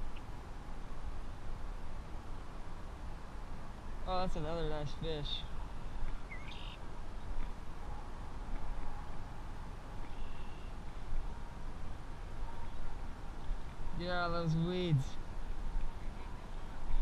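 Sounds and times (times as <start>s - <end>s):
bird chirp: 5.4s - 7.5s, 10.0s - 10.8s.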